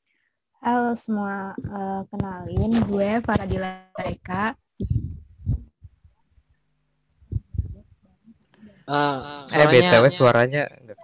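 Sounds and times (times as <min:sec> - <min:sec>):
muffled low thumps: 0:01.4 - 0:06.2, 0:07.2 - 0:08.0
muffled voice: 0:08.9 - 0:11.0.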